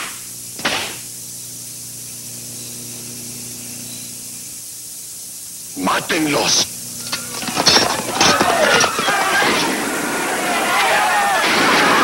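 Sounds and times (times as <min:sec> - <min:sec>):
tape hiss: 0:00.0 - 0:12.0
low even hum: 0:00.1 - 0:10.7.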